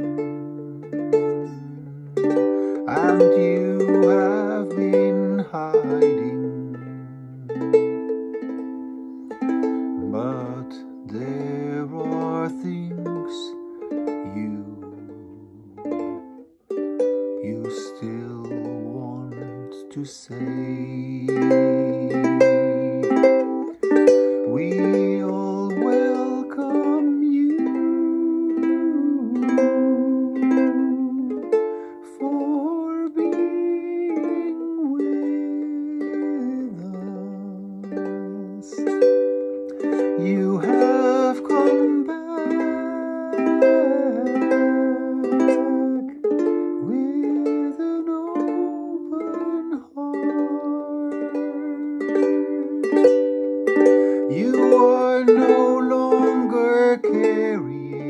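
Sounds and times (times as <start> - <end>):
ukulele strumming: 0.0 - 58.0.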